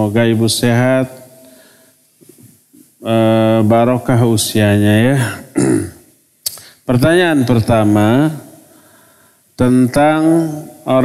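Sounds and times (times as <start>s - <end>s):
man speaking: 0.0s - 1.2s, 3.0s - 5.6s, 6.9s - 8.6s, 9.6s - 11.0s
man clearing throat: 5.2s - 6.0s.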